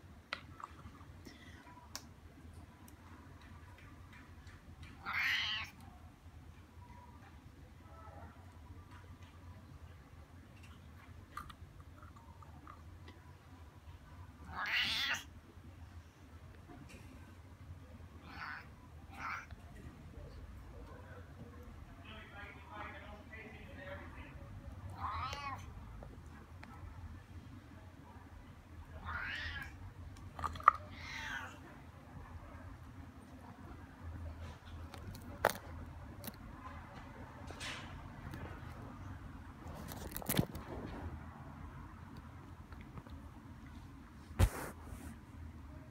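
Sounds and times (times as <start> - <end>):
cat meowing: 5.0 - 5.8, 14.4 - 15.3, 18.2 - 19.5, 25.0 - 25.7, 29.0 - 29.8, 30.7 - 31.6.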